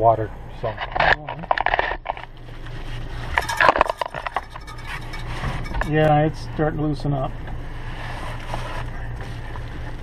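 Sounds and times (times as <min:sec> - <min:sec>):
tool clicking and scraping on pipe: 0:03.3 - 0:06.1.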